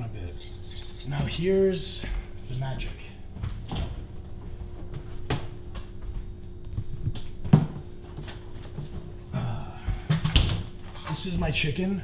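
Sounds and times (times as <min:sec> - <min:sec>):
refrigerator door opening: 0:03.5 - 0:04.2.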